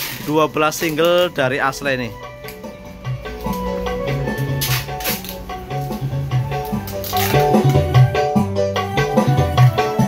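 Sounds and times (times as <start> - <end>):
loud music with pulsing bass: 2.7 - 10.0.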